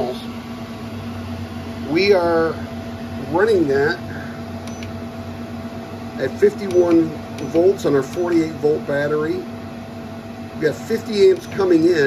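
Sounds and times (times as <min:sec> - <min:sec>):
inverter humming: 0:00.0 - 0:12.0.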